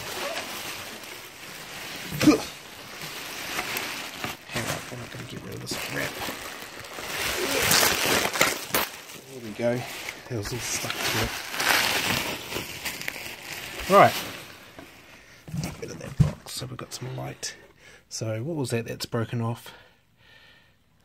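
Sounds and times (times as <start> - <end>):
bubble wrap rustling and crinkling: 0.0 - 17.3.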